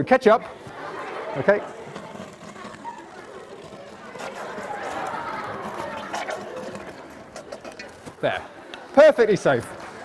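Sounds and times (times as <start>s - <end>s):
audience chattering: 0.0s - 10.0s.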